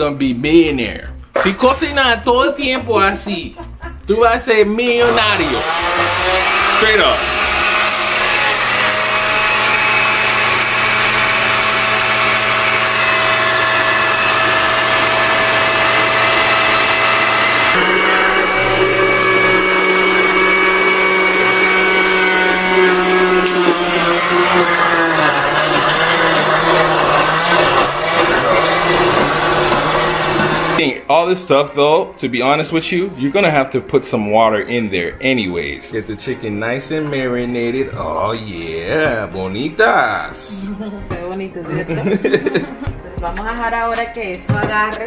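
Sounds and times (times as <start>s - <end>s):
electric blender running: 5.0s - 30.8s.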